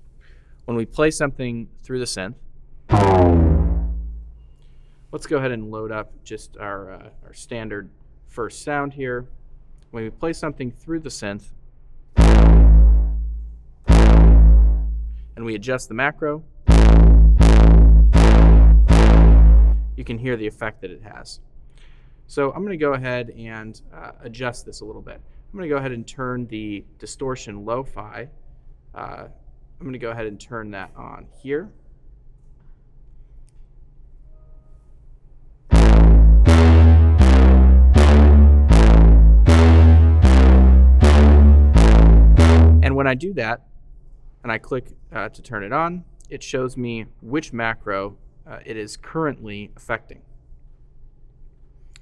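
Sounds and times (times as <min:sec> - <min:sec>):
faint low hum: 0:00.0 - 0:21.8
deep synth bass note: 0:02.9 - 0:04.5, 0:12.2 - 0:15.4, 0:16.7 - 0:20.2, 0:35.7 - 0:43.2.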